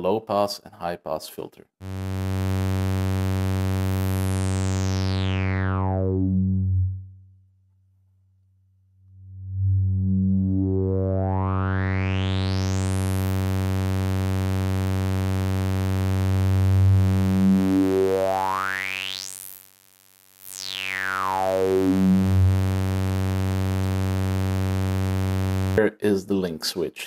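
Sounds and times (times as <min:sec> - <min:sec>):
low synthesizer drone: 0:01.8 - 0:07.4, 0:09.0 - 0:18.6, 0:20.6 - 0:25.8
whistling resonant filter sweep: 0:04.6 - 0:07.3, 0:09.2 - 0:13.6, 0:20.5 - 0:25.7.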